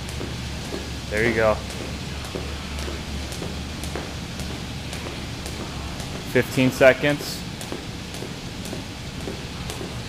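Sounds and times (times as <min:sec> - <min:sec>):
jump rope ticking on floor: 0:00.0 - 0:10.0
steady low hum: 0:00.0 - 0:10.0.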